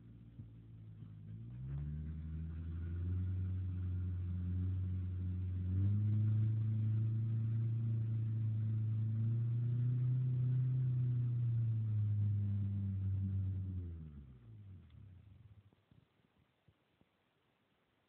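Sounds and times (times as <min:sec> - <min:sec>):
wheels spinning in mud: 0:00.0 - 0:16.4
truck engine revving high: 0:01.5 - 0:14.4.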